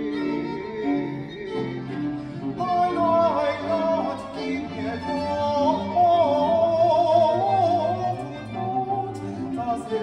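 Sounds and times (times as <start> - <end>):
man singing with vibrato: 0.0 - 10.0
violins and cello: 0.0 - 10.0.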